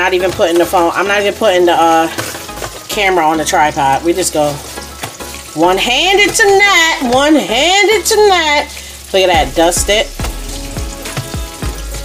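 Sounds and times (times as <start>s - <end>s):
fish sizzling in oil: 0.0s - 12.0s.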